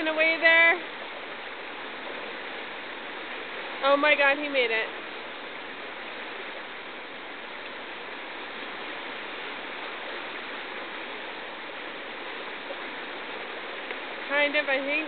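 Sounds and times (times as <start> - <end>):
river rushing through rapids: 0.0 - 15.0.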